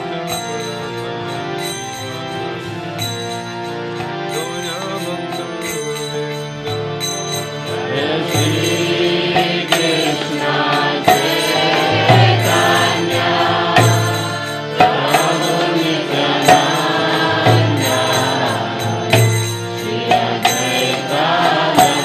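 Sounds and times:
harmonium chords: 0.0s - 22.0s
man chanting: 4.3s - 6.7s, 7.7s - 19.2s.

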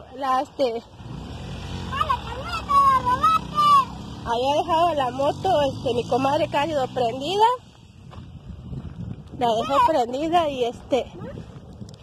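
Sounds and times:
motorcycle engine passing: 0.0s - 10.8s.

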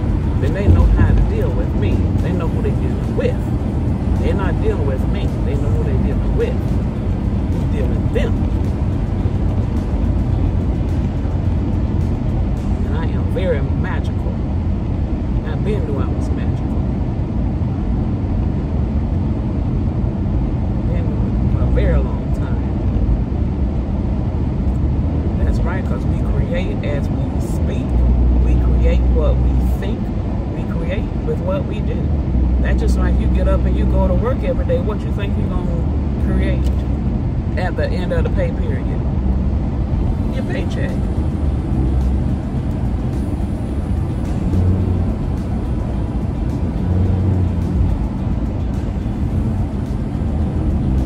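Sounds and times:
car cabin road rumble: 0.0s - 51.0s
truck passing: 0.0s - 51.0s.

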